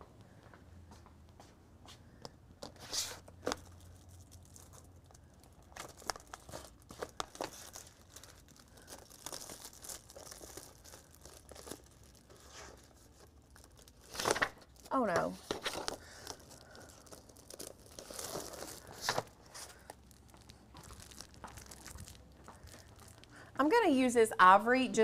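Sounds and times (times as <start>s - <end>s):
low room hum: 0.0s - 25.0s
cardstock sheets rustling: 5.8s - 23.1s.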